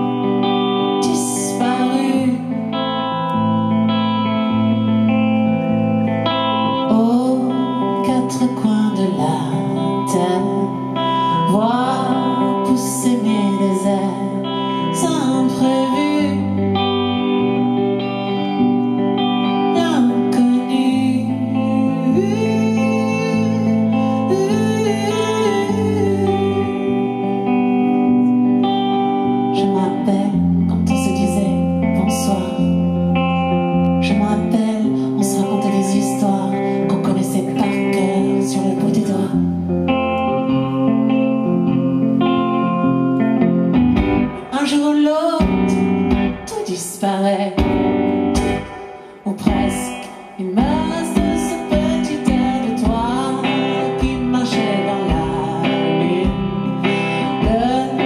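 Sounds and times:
live band with guitar: 0.0 - 58.0.

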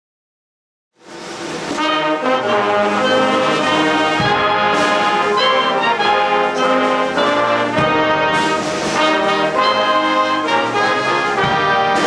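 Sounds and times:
pep band playing brass chords: 1.0 - 12.0.

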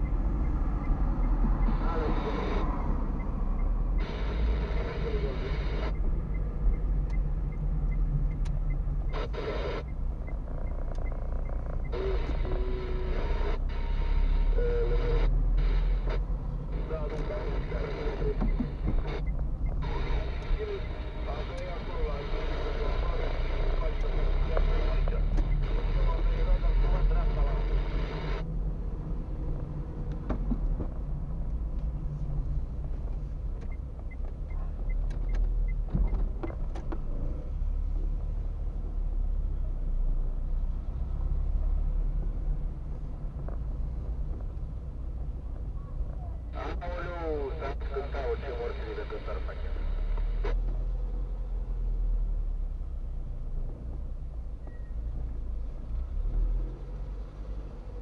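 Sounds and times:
turn indicator ticking: 0.0 - 2.2, 2.8 - 4.0, 5.8 - 12.7, 18.3 - 21.9, 32.8 - 37.1
engine and road rumble: 0.0 - 58.0.

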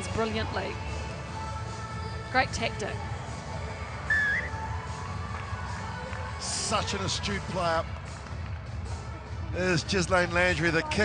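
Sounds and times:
faint background music: 0.0 - 11.0
short wavering whistle: 4.1 - 4.6.

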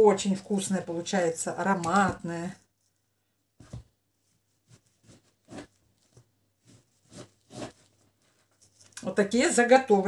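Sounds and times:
knife cutting through fat: 7.0 - 7.9.

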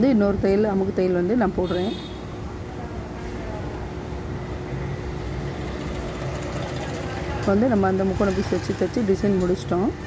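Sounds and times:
electric sewing machine running: 5.5 - 7.6.

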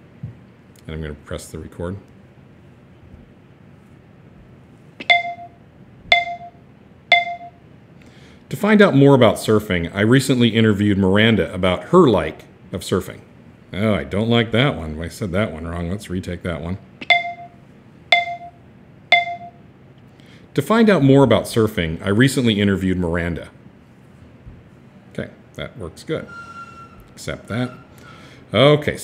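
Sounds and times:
short beeps: 5.0 - 7.6, 17.0 - 19.6.

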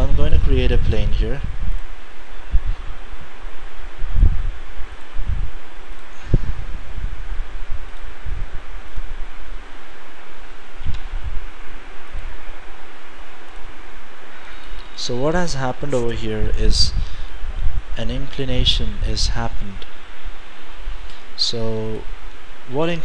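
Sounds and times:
open microphone hiss: 0.0 - 23.0.

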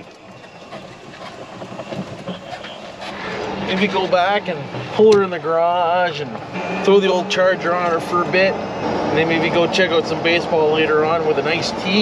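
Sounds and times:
golf cart rolling on pavement: 0.0 - 12.0.

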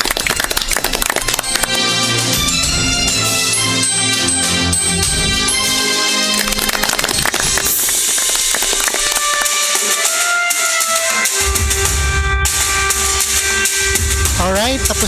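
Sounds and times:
bass drum: 11.4 - 15.0.

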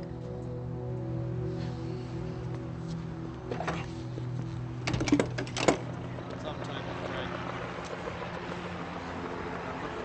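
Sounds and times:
background murmur: 5.7 - 10.0.

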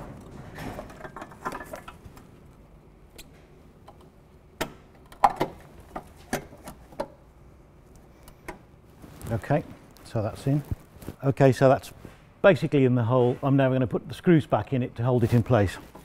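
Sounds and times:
soft rustling handling noise: 7.9 - 13.7, 15.0 - 16.0.

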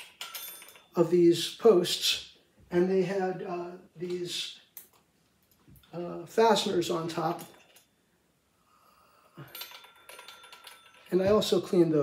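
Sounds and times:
metal parts clinking: 0.0 - 1.1, 7.2 - 8.0, 9.4 - 11.8.

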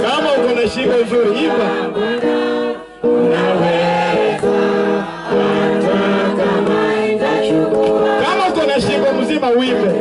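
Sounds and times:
choir singing a worship song: 0.0 - 10.0.

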